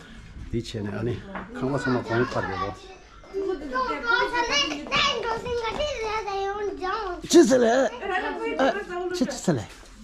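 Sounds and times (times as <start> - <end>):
child talking: 1.6 - 9.0
man talking: 7.3 - 7.9.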